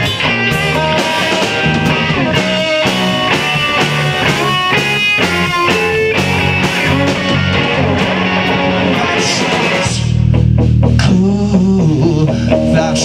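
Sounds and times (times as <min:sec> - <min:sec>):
bass guitar: 0:00.0 - 0:13.0
drum kit: 0:00.0 - 0:13.0
electric guitars: 0:00.0 - 0:13.0.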